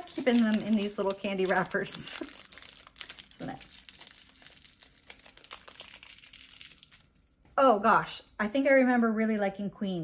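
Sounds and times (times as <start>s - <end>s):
candy wrapper crinkling: 0.0s - 7.5s.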